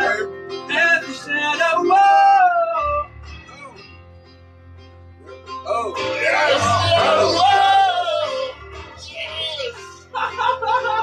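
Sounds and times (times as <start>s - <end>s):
man singing with music: 0.0s - 11.0s.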